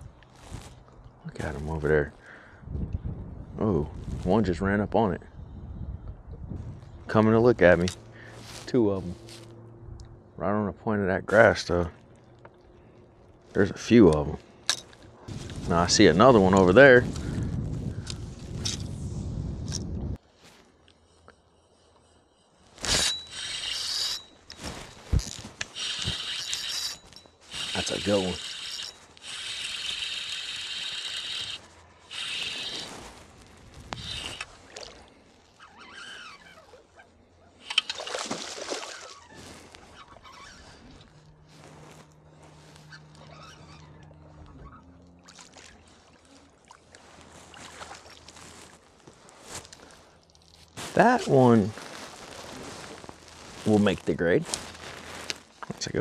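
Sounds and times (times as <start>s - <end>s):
low steady hum: 0.0s - 35.6s
fishing reel drag buzzing: 22.8s - 33.1s, 33.9s - 35.0s, 35.6s - 36.8s
water splashing: 37.6s - 40.1s, 44.6s - 48.4s.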